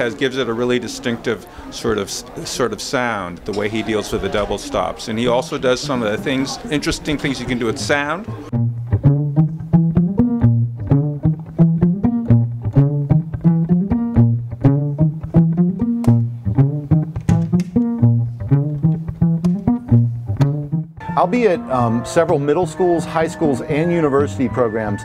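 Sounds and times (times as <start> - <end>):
violin plucked and strummed: 8.2 - 25.0
repeating bass line: 8.4 - 24.5.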